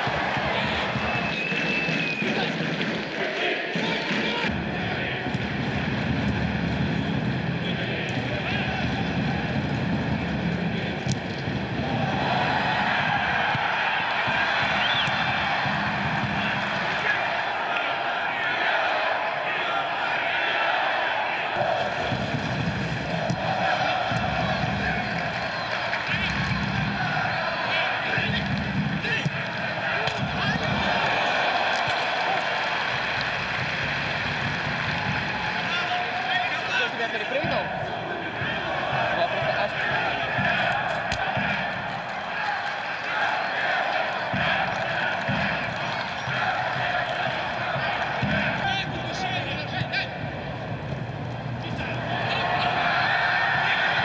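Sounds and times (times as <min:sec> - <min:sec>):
stadium crowd din: 0:00.0 - 0:54.0.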